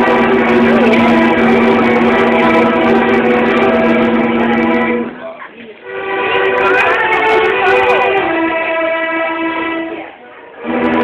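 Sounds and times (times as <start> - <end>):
string orchestra chords: 0.0 - 11.0.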